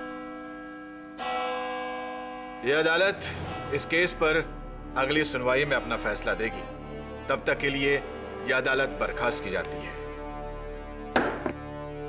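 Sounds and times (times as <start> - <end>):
deep bell ringing: 0.0 - 8.1.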